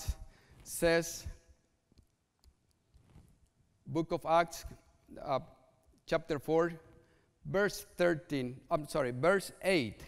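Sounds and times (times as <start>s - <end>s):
man speaking: 0.0s - 1.6s, 3.8s - 10.0s.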